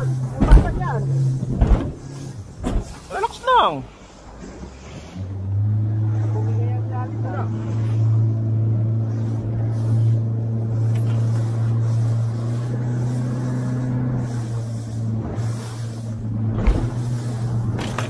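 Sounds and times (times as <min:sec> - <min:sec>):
boat motor droning: 0:00.0 - 0:18.0.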